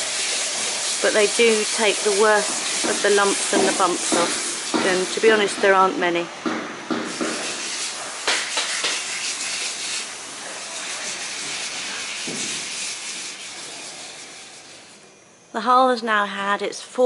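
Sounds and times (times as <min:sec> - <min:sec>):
sandpaper rubbing by hand: 0:00.0 - 0:05.4, 0:07.1 - 0:15.0.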